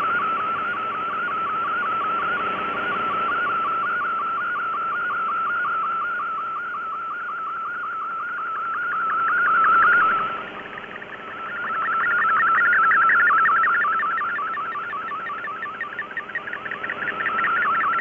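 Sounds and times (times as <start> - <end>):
warbling data tone: 0.0 - 18.0
radio hiss: 8.6 - 18.0.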